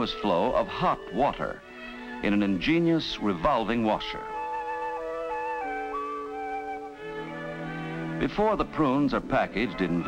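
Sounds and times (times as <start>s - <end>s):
slow flute-like melody: 0.0s - 8.8s.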